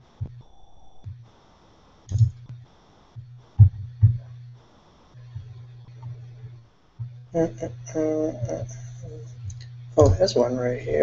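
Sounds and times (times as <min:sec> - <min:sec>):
low hum: 0:00.0 - 0:01.4, 0:02.1 - 0:11.0.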